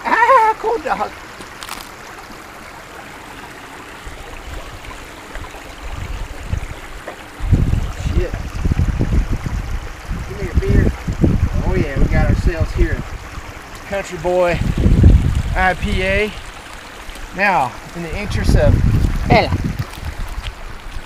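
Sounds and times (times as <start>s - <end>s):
creek trickling: 0.0s - 21.0s
low rumble on microphone: 4.0s - 21.0s.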